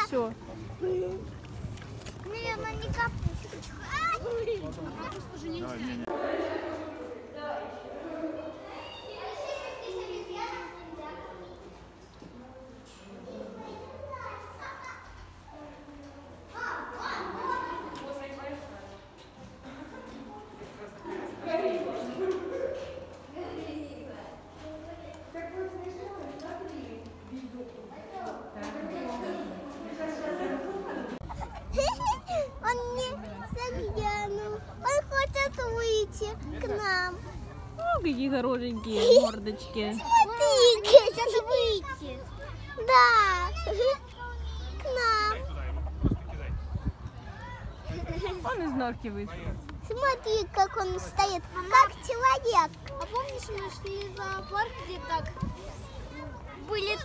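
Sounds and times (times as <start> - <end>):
children talking and calling out: 0.0 - 49.1, 49.7 - 57.0.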